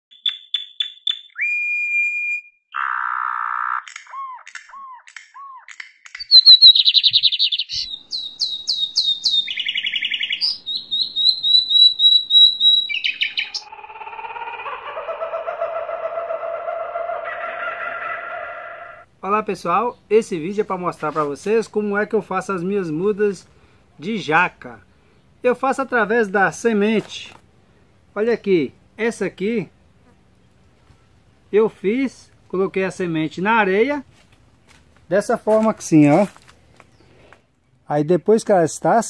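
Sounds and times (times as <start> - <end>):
bird calls and trills: 0.1 - 19.0.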